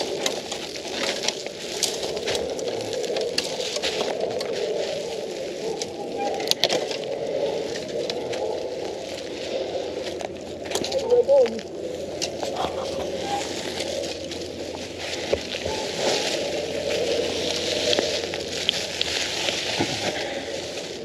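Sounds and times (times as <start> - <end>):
bicycle tyre and ground noise: 0.0 - 21.0.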